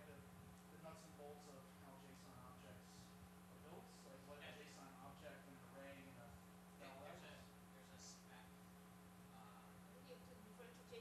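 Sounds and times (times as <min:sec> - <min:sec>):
steady low hum: 0:00.0 - 0:11.0
faint indistinct speech: 0:09.3 - 0:11.0.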